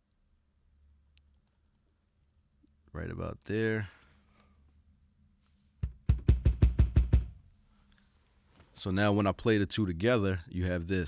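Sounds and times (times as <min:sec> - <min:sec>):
kick drum hits: 0:05.8 - 0:07.4.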